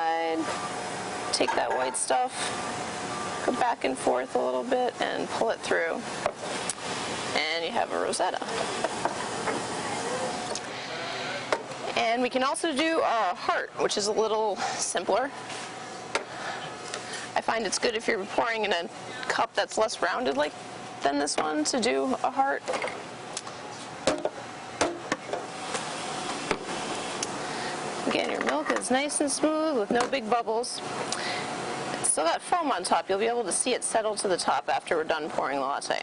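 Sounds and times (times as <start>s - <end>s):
steady background hiss: 0.0s - 36.0s
steady background hum: 0.0s - 36.0s.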